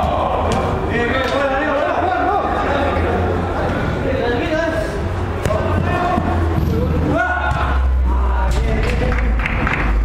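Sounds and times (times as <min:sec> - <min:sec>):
players calling out: 0:00.0 - 0:09.1.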